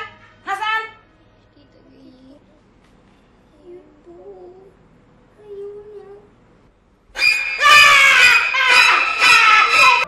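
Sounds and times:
woman screaming: 7.2 - 10.0.

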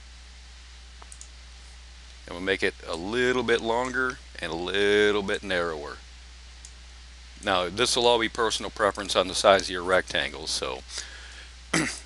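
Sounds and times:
low hum and hiss: 0.0 - 12.0
computer mouse click: 1.0 - 1.3.

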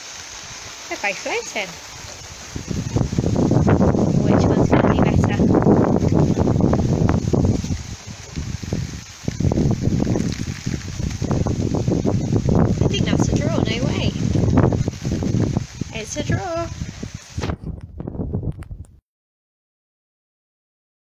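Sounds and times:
gusty wind buffeting microphone: 0.3 - 19.0.

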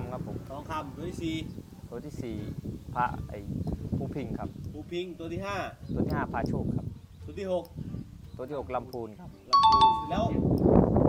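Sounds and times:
two-note ding-dong chime: 9.6 - 10.4.

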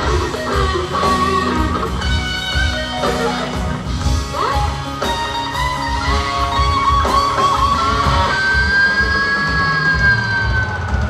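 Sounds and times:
instrumental rock band: 0.0 - 11.0.

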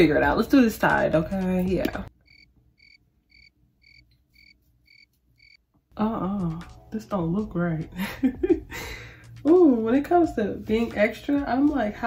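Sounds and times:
cricket chirping: 2.2 - 5.6.

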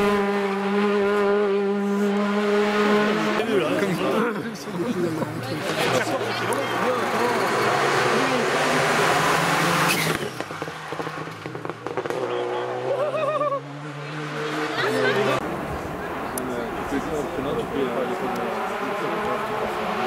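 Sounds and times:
rally car engine at full throttle: 0.0 - 20.0
spectators' voices: 3.3 - 10.9, 14.0 - 20.0.

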